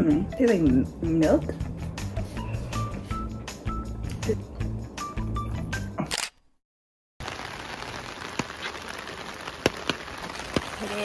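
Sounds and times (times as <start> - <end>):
background music: 0.0 - 6.0
rain pattering on plastic umbrella: 7.2 - 11.0.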